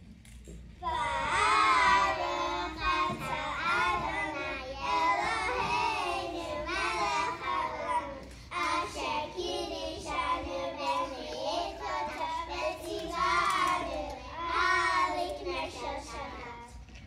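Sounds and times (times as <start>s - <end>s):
children singing: 0.8s - 16.8s.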